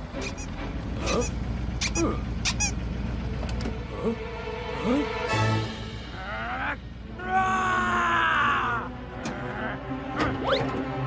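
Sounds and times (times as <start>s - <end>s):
cartoon character groaning: 2.0s - 2.4s, 6.1s - 10.5s
background music: 2.9s - 11.0s.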